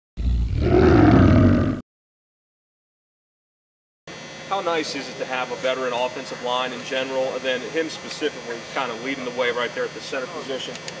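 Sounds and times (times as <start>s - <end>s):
tiger roaring: 0.2s - 1.8s.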